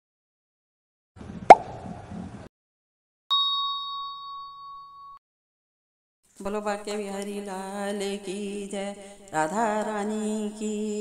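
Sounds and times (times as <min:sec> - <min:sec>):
bright ringing ding: 0:03.3 - 0:05.2.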